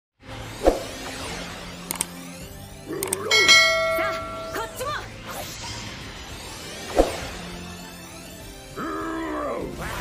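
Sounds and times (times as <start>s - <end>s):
soundtrack music: 0.2s - 10.0s
bell-like metallic chime: 3.3s - 5.0s.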